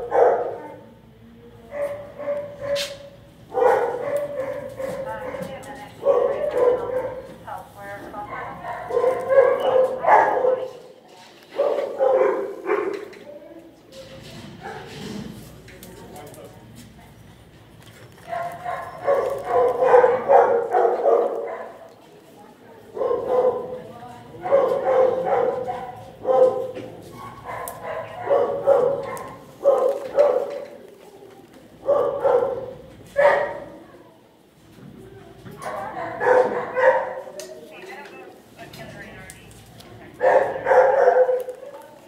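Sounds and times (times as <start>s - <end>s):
dogs barking and yipping: 1.7s - 5.4s, 6.0s - 7.4s, 8.2s - 10.8s, 11.6s - 13.1s, 18.2s - 21.9s, 24.4s - 30.8s, 31.8s - 33.7s, 35.6s - 37.4s, 40.2s - 41.6s.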